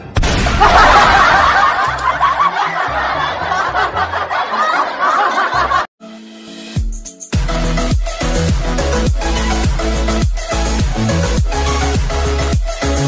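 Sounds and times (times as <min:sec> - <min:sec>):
sudden bang: 0:00.0 - 0:01.5
laughing sound effect: 0:00.4 - 0:05.9
music with bass line: 0:06.5 - 0:13.0.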